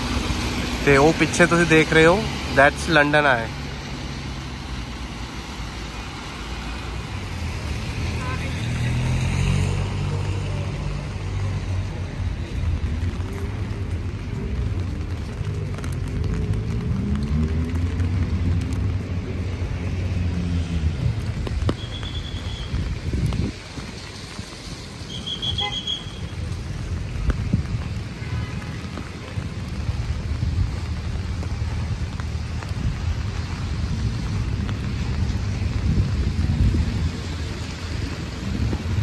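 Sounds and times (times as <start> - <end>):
road traffic on wet street: 0.0 - 39.0
voices of passers-by: 0.0 - 39.0.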